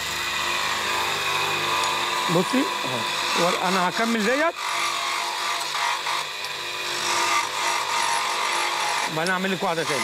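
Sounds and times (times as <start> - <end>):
chisel scraping spinning wood: 0.0 - 10.0
wood lathe motor hum: 0.0 - 10.0.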